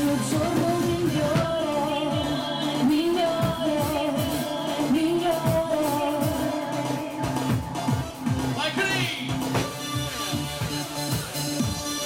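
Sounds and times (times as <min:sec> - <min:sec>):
woman singing: 0:00.0 - 0:08.3
drum kit: 0:00.0 - 0:12.0.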